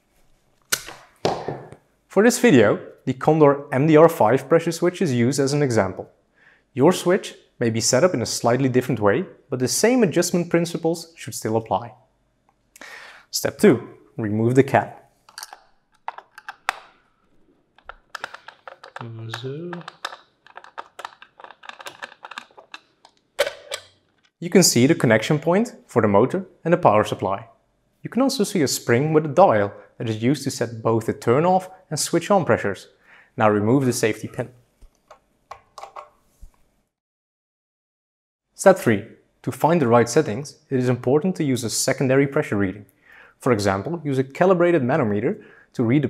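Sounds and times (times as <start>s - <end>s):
screwdriver clicks and taps: 15.3s - 16.9s, 19.8s - 23.8s
brief voice-like hum: 19.0s - 19.9s.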